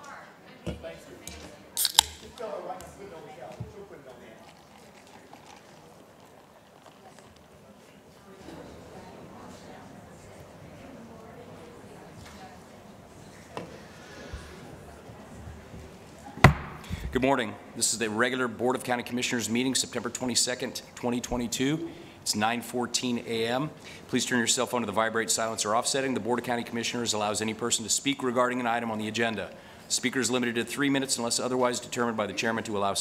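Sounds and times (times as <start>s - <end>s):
murmur of people talking: 0.0s - 33.0s
wooden gavel strike: 16.4s - 16.9s.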